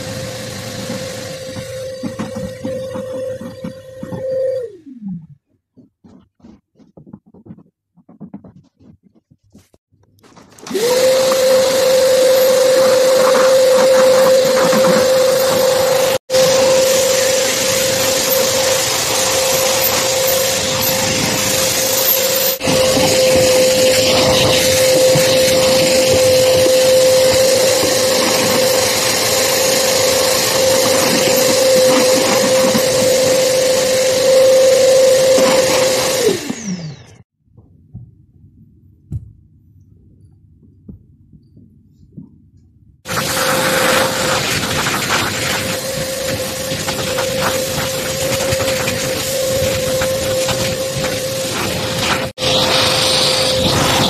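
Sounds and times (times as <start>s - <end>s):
vacuum cleaner running: 0.0s - 5.4s, 10.5s - 37.3s, 43.1s - 54.0s.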